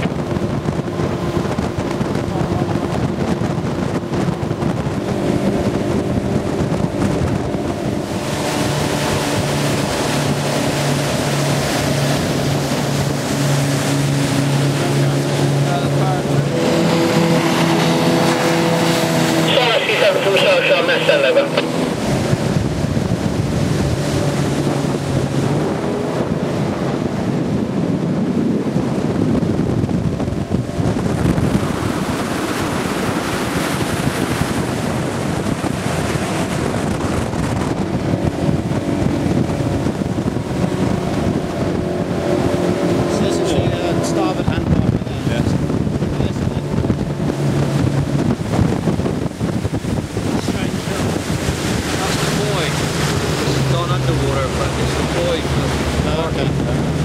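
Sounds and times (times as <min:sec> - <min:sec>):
boat engine running: 0:00.0 - 0:57.0
water rushing past hull: 0:00.0 - 0:57.0
wind buffeting microphone: 0:00.0 - 0:57.0.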